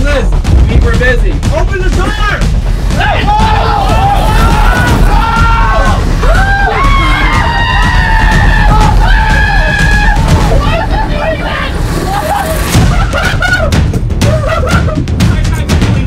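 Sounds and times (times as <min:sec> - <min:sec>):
loud music with heavy bass: 0:00.0 - 0:16.0
young men shouting in alarm: 0:03.0 - 0:11.8.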